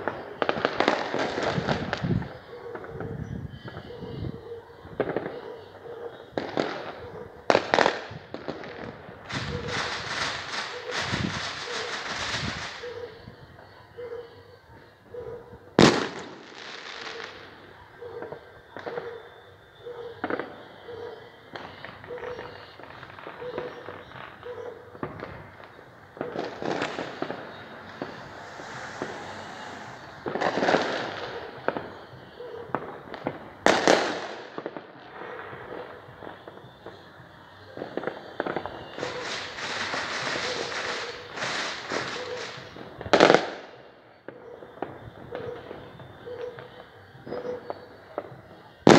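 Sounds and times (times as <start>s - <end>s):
fireworks crackling: 0.0s - 2.9s, 4.9s - 13.6s, 15.8s - 17.8s, 21.4s - 44.0s
fireworks bangs: 0.0s - 4.2s, 4.8s - 13.7s, 15.8s - 19.2s, 21.4s - 46.7s.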